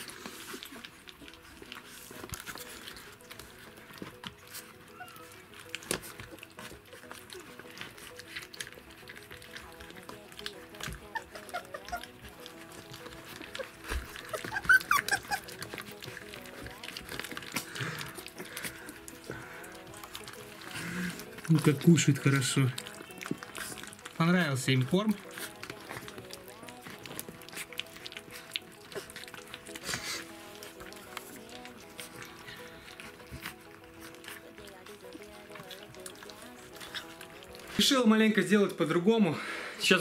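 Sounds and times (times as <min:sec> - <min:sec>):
puppies lapping and smacking: 0:00.0 - 0:40.0.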